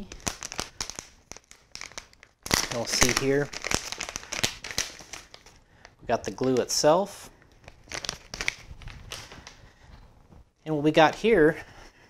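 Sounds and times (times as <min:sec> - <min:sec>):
plastic packaging crinkling: 0:00.0 - 0:09.7.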